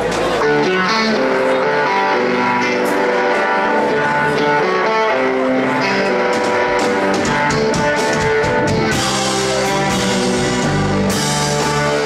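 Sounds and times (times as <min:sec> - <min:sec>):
blues-rock band playing: 0:00.0 - 0:12.0
electric guitars: 0:00.0 - 0:12.0
keyboard holding notes: 0:00.0 - 0:12.0.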